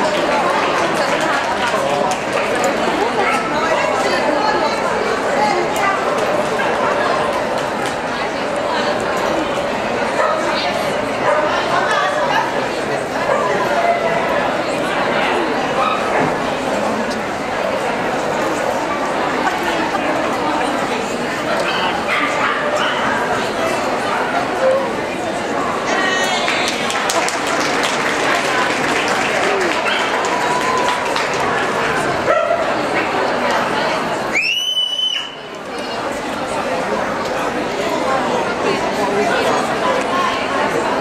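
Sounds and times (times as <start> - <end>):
chatter of many people: 0.0 - 41.0
dog barking: 32.3 - 32.7.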